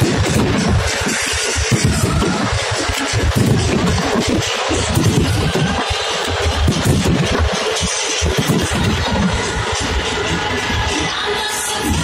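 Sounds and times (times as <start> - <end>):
fireworks crackling and banging: 0.0 - 12.0
music playing: 0.0 - 12.0.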